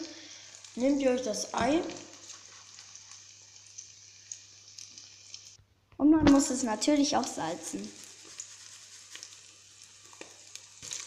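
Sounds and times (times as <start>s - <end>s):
eggs sizzling in a pan: 0.0s - 5.6s, 6.3s - 11.0s.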